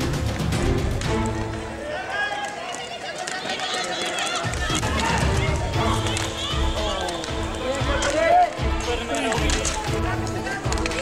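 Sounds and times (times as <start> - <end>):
background music with low beat: 0.0 - 1.7
voices shouting and calling: 1.6 - 11.0.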